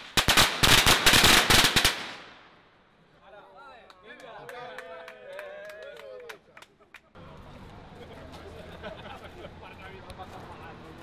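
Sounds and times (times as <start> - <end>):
firecrackers banging: 0.0 - 2.6.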